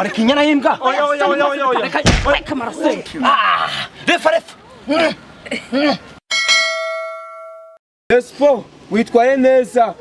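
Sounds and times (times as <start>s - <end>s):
boxing bell ringing: 6.3s - 7.8s.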